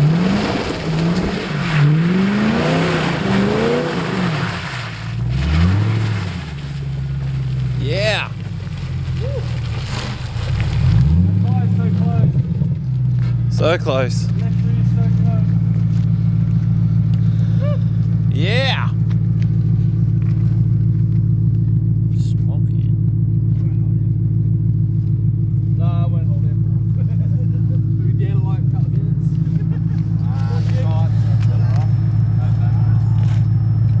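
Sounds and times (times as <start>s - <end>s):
car engine running steadily: 0.0s - 34.0s.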